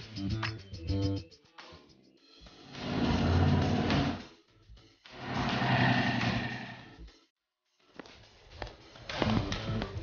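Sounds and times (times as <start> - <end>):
motorcycle engine revving: 2.7 - 4.2.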